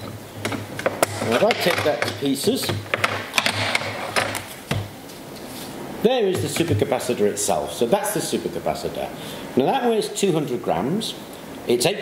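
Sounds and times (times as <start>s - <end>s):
sharp clicks and knocks: 0.0s - 4.9s.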